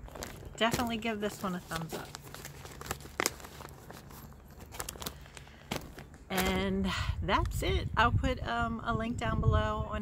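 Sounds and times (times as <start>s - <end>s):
paper rustling and crinkling: 0.0s - 6.6s.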